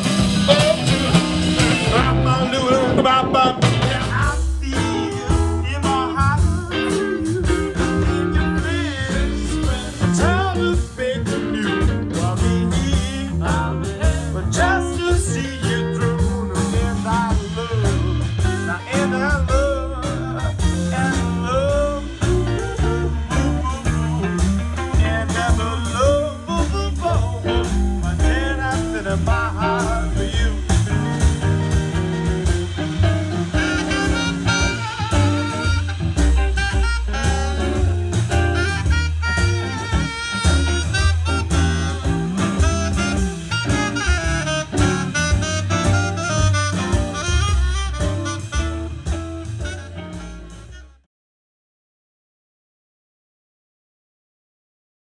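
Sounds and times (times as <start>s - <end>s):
electric guitars: 0.0s - 50.8s
live blues band playing: 0.0s - 51.1s
saxophone: 0.0s - 51.1s.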